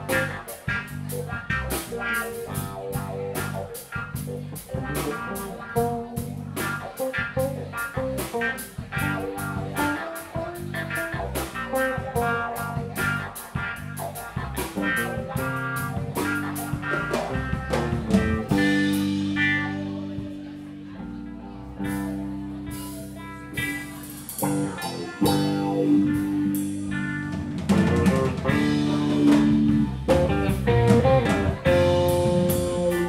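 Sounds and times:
live rock band playing: 0.0 - 33.0
steady cymbal beat: 22.0 - 27.6.

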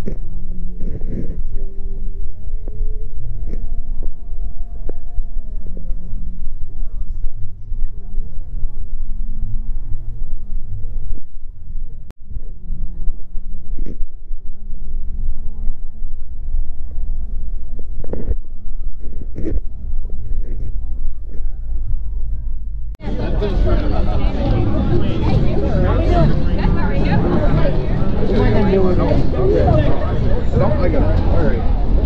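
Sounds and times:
murmur of voices: 0.0 - 32.0
steady low rumble: 0.0 - 32.0
background music: 22.0 - 32.0.

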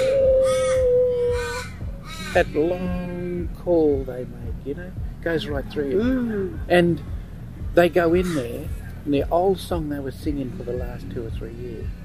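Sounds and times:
long whale-like call: 0.0 - 2.3.

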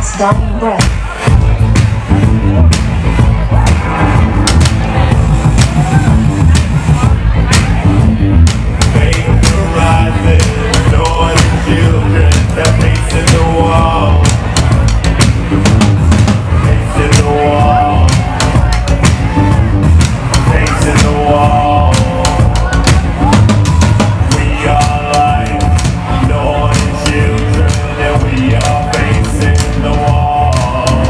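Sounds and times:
drum kit beat: 0.0 - 31.0
heavy bass: 0.0 - 31.0.

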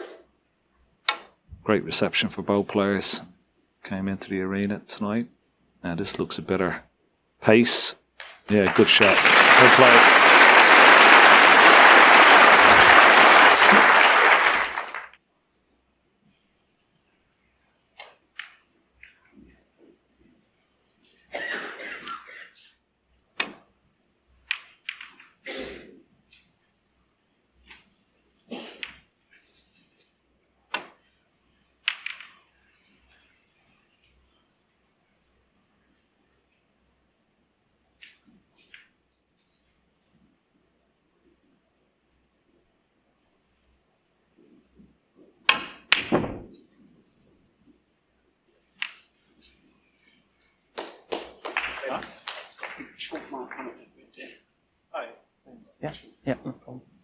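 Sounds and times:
snooker balls clicking: 1.0 - 1.4, 17.9 - 19.4, 24.3 - 25.4, 31.8 - 32.6, 44.6 - 46.6, 48.7 - 51.5
person coughing: 21.3 - 22.6, 25.4 - 26.0
cue tip striking ball: 45.4 - 46.5.

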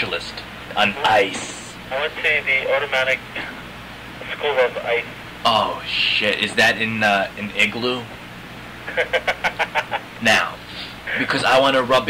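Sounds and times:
person laughing over telephone: 8.8 - 10.2.

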